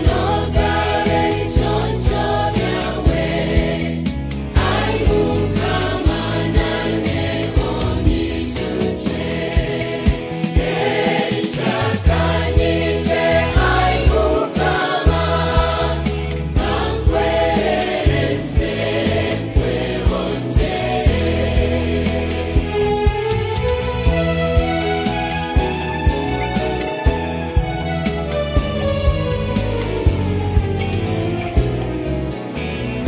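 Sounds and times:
gospel choir singing: 0:00.0 - 0:30.6
band with bass and beat: 0:00.0 - 0:33.0.

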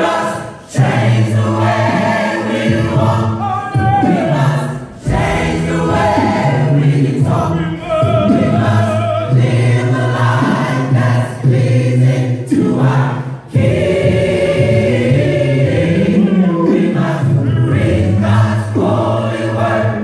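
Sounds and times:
gospel choir singing a cappella: 0:00.0 - 0:20.0.

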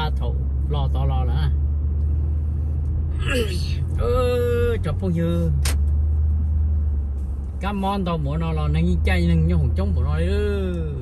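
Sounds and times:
low rumble of car driving: 0:00.0 - 0:11.0
man talking: 0:03.2 - 0:05.6, 0:07.6 - 0:11.0.

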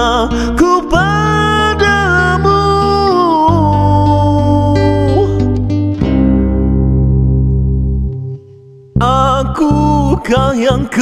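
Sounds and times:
acoustic guitar chord ringing: 0:00.0 - 0:10.2.

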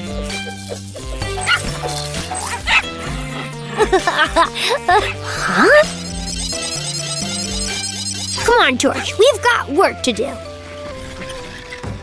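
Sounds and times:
background music: 0:00.0 - 0:12.0
cartoon dog calls: 0:01.0 - 0:02.9, 0:04.9 - 0:06.6.

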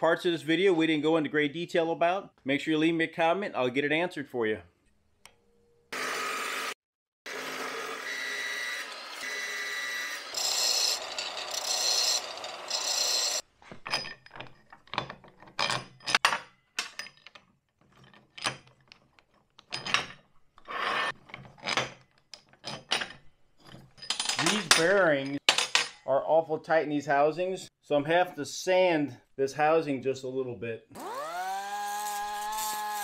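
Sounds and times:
power tool grinding metal: 0:07.3 - 0:13.4, 0:31.0 - 0:33.0.

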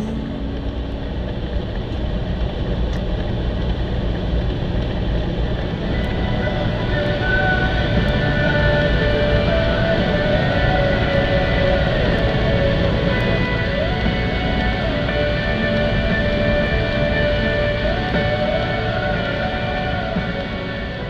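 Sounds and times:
long held tones: 0:00.0 - 0:01.3, 0:05.6 - 0:21.0
vehicle engine and road rumble: 0:00.0 - 0:21.0.

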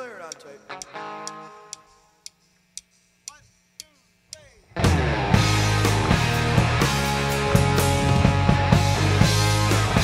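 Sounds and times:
sharp quiet ticks keeping time: 0:00.0 - 0:04.6
electric guitar note ringing: 0:00.7 - 0:02.0
faint bent guitar notes: 0:04.7 - 0:10.0.

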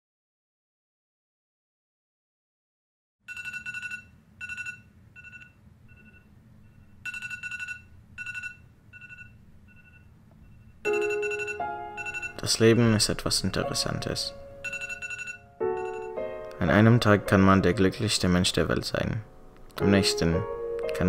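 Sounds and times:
phone alarm ringtone: 0:03.3 - 0:12.5, 0:14.6 - 0:16.2.

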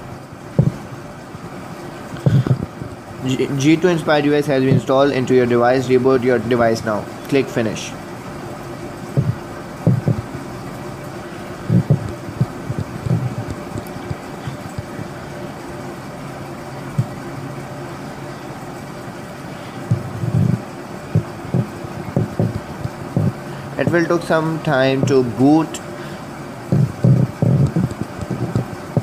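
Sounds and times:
room hum: 0:00.0 - 0:29.0
handling thumps and bumps: 0:00.6 - 0:00.9, 0:02.2 - 0:03.0, 0:09.1 - 0:10.4, 0:11.6 - 0:15.1, 0:19.9 - 0:23.4, 0:26.7 - 0:29.0.

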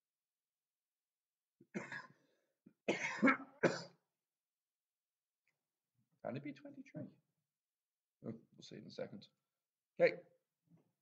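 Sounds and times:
person coughing: 0:01.7 - 0:02.2, 0:02.9 - 0:04.0.

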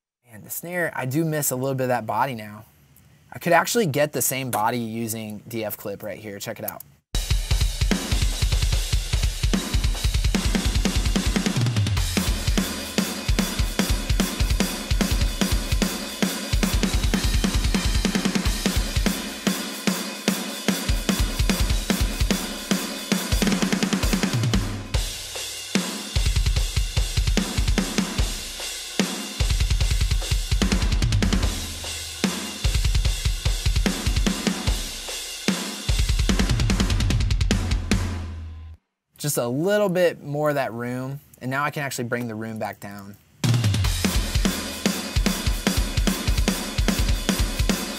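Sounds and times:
cymbals: 0:07.2 - 0:36.6, 0:43.4 - 0:47.9
snare drum: 0:07.2 - 0:38.2, 0:43.4 - 0:47.9
kick drum: 0:29.4 - 0:31.8.

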